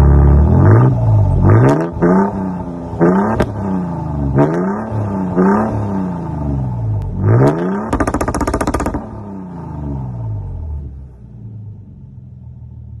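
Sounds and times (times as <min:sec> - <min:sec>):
engine exhaust revving: 0:00.0 - 0:11.2
sharp exhaust pops: 0:03.1 - 0:03.6, 0:07.7 - 0:09.2.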